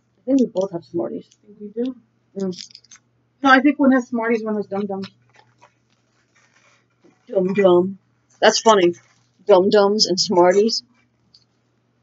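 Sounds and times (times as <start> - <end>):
plastic wrap rustling: 5.0 - 7.5, 8.2 - 9.5.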